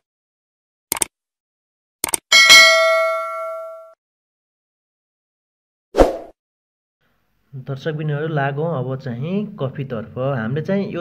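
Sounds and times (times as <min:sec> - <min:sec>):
bright bell ding: 0:02.3 - 0:04.0.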